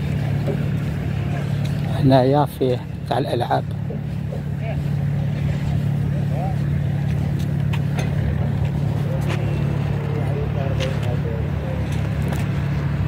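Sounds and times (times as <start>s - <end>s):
low engine drone: 0.0s - 13.0s.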